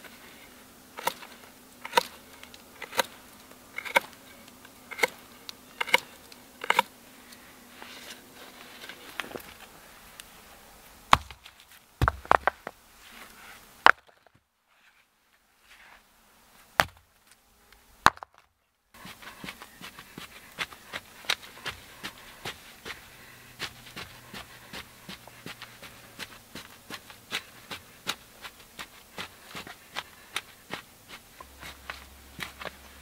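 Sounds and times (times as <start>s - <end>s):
rocks landing on earth: 11.1s - 12.8s, 13.8s - 14.4s, 18.0s - 18.5s
stick scratching into soil: 23.6s - 33.0s.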